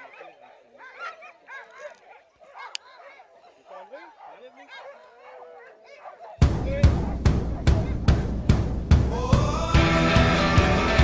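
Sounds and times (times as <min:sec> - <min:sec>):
sled dogs whining and yipping: 0:00.0 - 0:06.4, 0:07.0 - 0:08.2.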